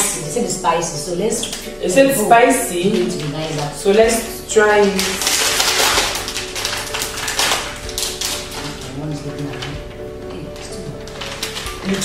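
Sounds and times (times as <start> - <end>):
snack packet crinkling: 2.6 - 12.0.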